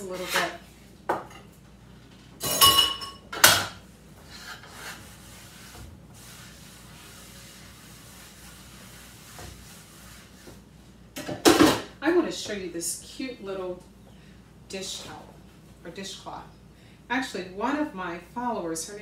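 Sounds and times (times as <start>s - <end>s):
kitchenware clinking: 2.4s - 3.8s
dishcloth wiping cutting board: 4.5s - 10.7s.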